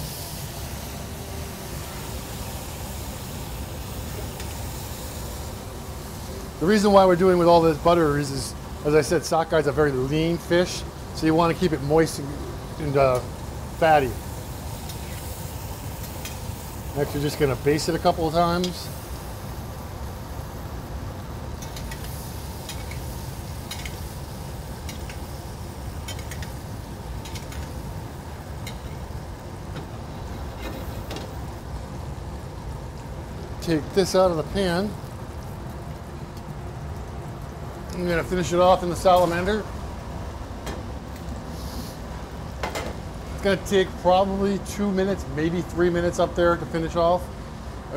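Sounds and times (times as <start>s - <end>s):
fish sizzling in a pan: 0.0s - 8.0s, 10.7s - 29.4s, 41.4s - 42.0s.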